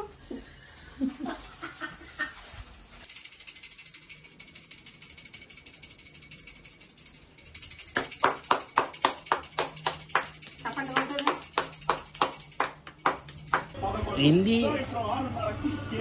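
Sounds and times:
hand bell ringing: 3.0 - 13.8
rhythmic hand clapping: 7.6 - 13.8.

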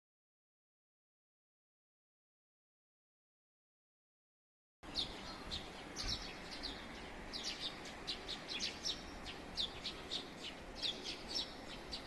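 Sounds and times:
faint background hum: 4.8 - 12.0
small birds chirping: 4.8 - 12.0.

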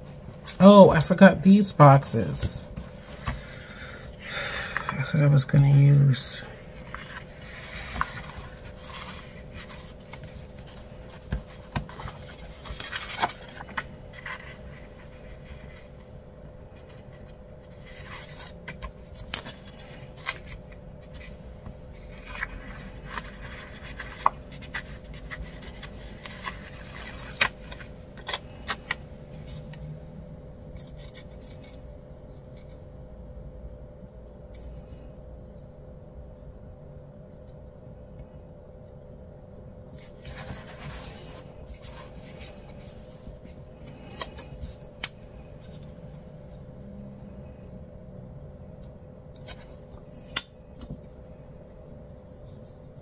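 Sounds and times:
paper pages rustling: 6.7 - 16.1, 16.7 - 29.9, 30.6 - 32.8, 39.9 - 46.6.

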